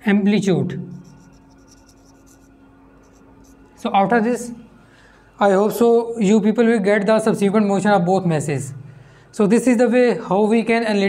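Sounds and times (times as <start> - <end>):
marker writing on whiteboard: 0.9 - 4.0.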